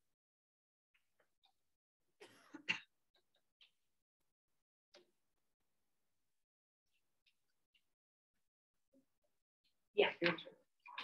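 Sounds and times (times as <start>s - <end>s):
person coughing: 2.2s - 2.9s.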